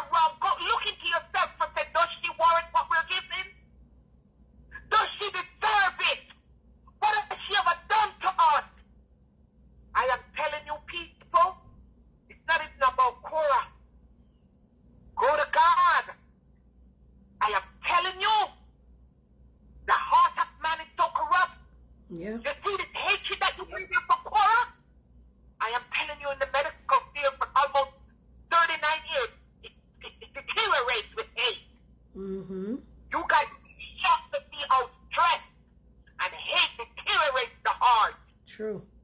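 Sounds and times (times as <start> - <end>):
woman speaking: 10.0 - 11.6, 12.3 - 13.7, 15.2 - 16.2, 17.4 - 18.4, 19.9 - 24.7, 25.6 - 27.9, 28.5 - 29.4, 30.0 - 31.6, 32.2 - 35.5, 36.2 - 38.2
person talking: 22.1 - 24.6, 32.2 - 35.4, 36.2 - 38.8.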